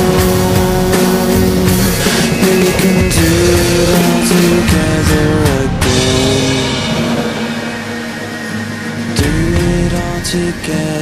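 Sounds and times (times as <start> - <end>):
rock song held note: 0.0 - 11.0.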